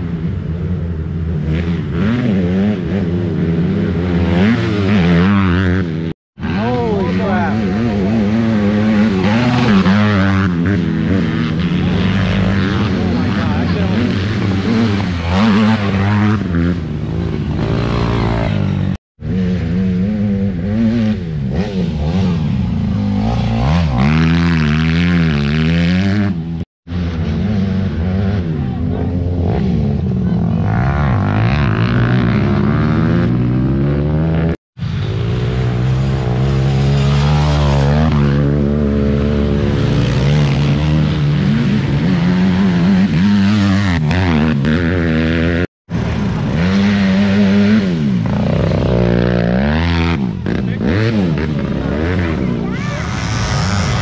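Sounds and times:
quad engines revving: 1.2 - 54.0.

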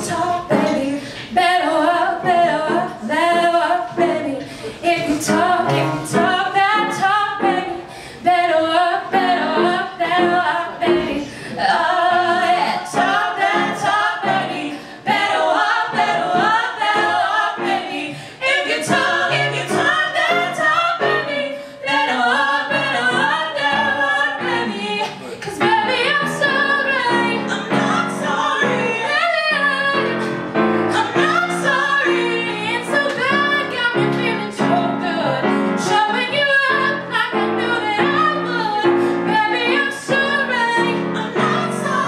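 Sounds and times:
women singing into microphones: 0.0 - 42.0.

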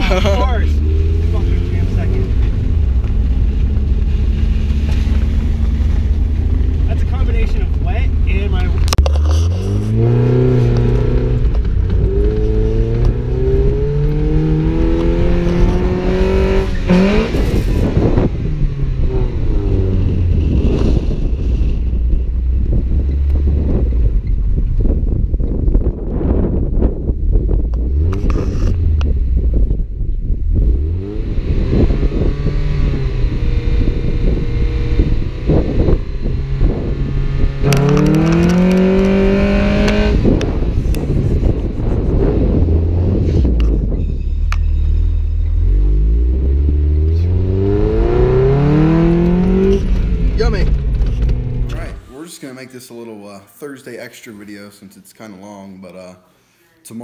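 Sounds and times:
car engine accelerating: 0.0 - 52.1
wind buffeting microphone: 0.8 - 44.3.

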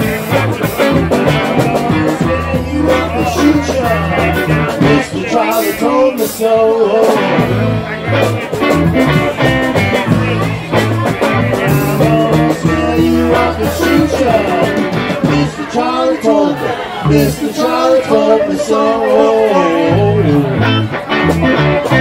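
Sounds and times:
drums: 0.0 - 22.0
electric guitar: 0.0 - 22.0
walking electric bass line: 0.0 - 22.0.

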